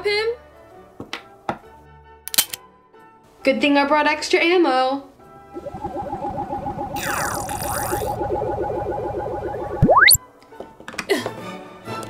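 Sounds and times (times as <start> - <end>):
electronic ray-gun warble: 5.5 - 10.2
sharp rising whistle: 5.5 - 10.2.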